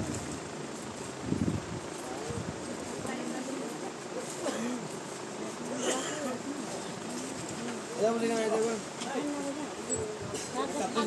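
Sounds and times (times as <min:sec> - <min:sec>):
people talking in a room: 0:00.8 - 0:11.0.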